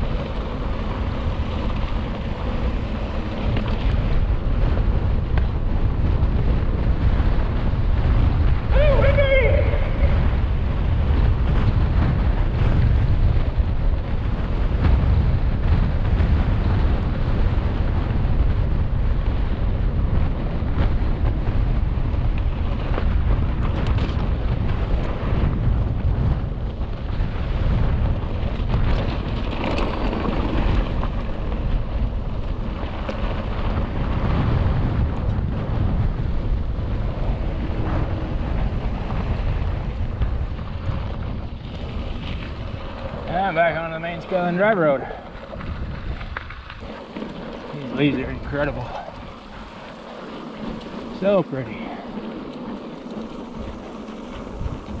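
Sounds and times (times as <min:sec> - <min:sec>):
bike knocks and rattles: 0:00.0 - 0:08.7, 0:10.2 - 0:43.4
wind buffeting microphone: 0:00.0 - 0:55.0.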